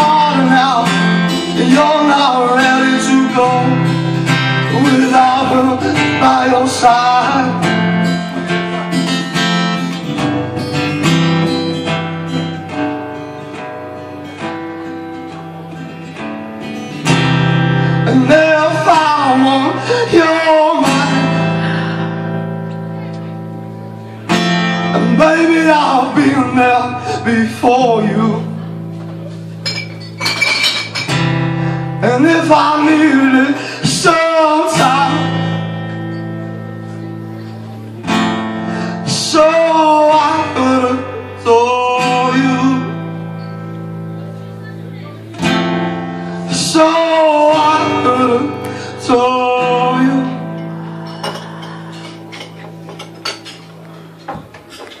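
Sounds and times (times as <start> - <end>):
person singing: 0.0 - 8.0, 17.8 - 23.4, 24.0 - 28.9, 31.8 - 52.7
acoustic guitar notes: 0.0 - 55.0
glasses and crockery clinking: 29.5 - 31.3, 50.6 - 55.0
bright ringing clinks: 29.6 - 31.2.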